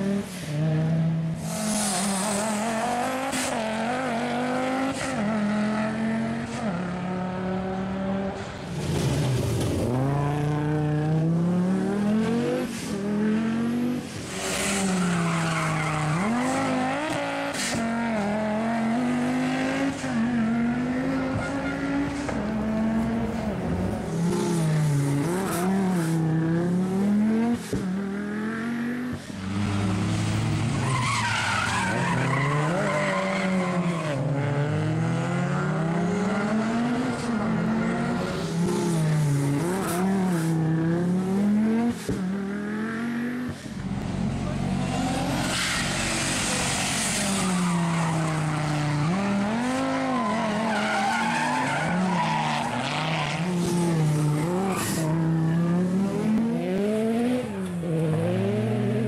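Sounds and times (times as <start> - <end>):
tyres squealing and skidding: 14.2 - 18.1, 19.3 - 22.6, 29.3 - 34.4, 44.4 - 55.8.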